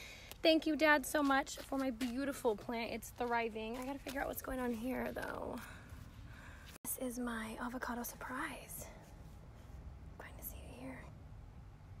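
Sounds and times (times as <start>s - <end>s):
person whispering: 10.2s - 11.1s.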